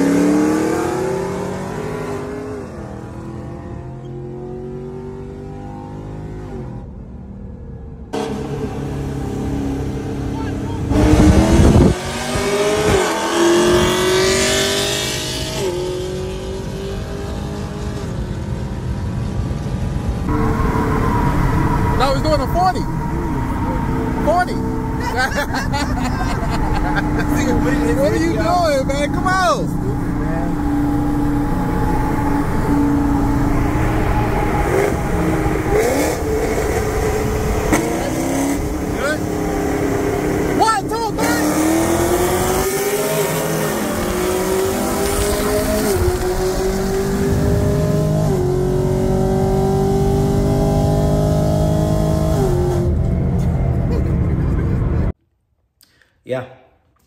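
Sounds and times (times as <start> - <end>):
car engine accelerating with upshifts: 0.0 - 7.0, 8.1 - 55.2
person talking: 27.2 - 30.5.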